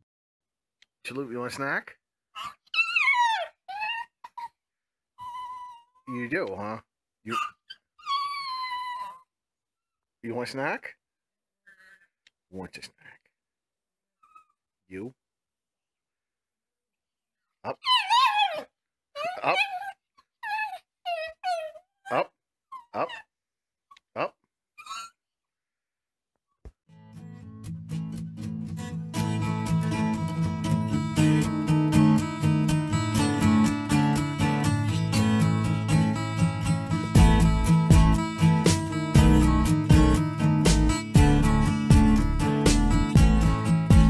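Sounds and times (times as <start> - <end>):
small dog whining: 2.4 - 4.6, 5.2 - 6.1, 7.3 - 9.3, 14.2 - 14.6, 17.7 - 23.3, 24.8 - 25.2
small dog yelp: 2.4 - 4.6, 5.2 - 5.9, 7.3 - 9.2, 17.7 - 23.3, 24.8 - 25.2.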